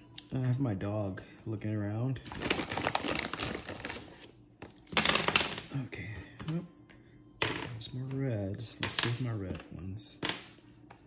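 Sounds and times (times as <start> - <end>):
plastic candy wrappers crinkling: 2.2 - 5.7.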